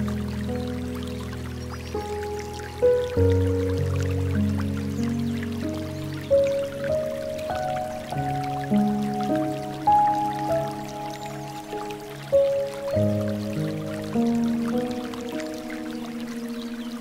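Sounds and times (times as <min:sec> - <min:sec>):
gentle piano music: 0:00.0 - 0:17.0
water trickling and dripping: 0:00.0 - 0:17.0.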